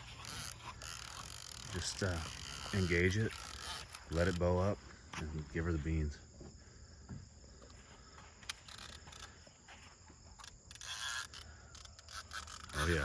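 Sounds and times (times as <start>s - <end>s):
crickets chirping: 0.0s - 13.0s.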